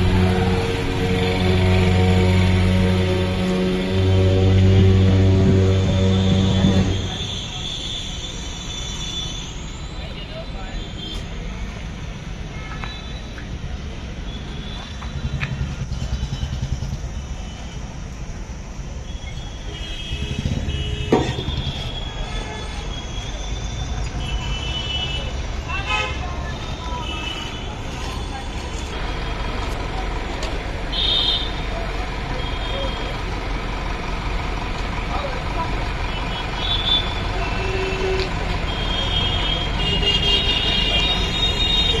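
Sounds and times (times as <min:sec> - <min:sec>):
vehicle horns tooting: 0:00.0 - 0:09.6, 0:19.3 - 0:28.4, 0:30.9 - 0:31.7, 0:36.1 - 0:42.0
road traffic rumble: 0:00.0 - 0:42.0.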